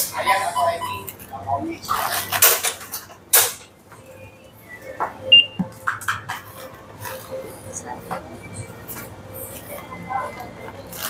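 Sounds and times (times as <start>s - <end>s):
high-pitched electronic beep: 4.1s - 5.7s.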